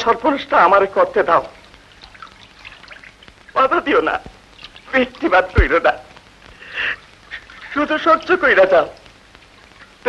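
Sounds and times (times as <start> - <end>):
faint background hiss: 0.0 - 10.0
man speaking: 4.9 - 6.1, 7.7 - 9.0.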